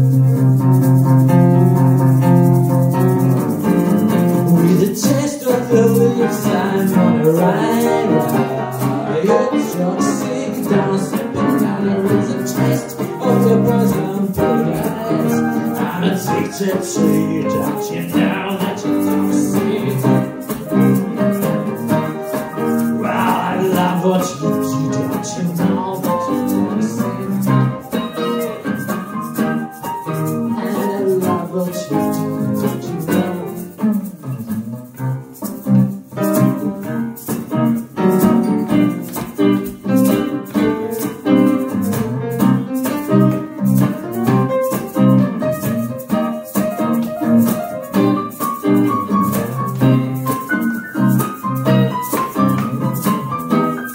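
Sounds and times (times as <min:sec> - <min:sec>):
electric guitar picking: 0:00.0 - 0:53.9
piano: 0:00.0 - 0:53.9.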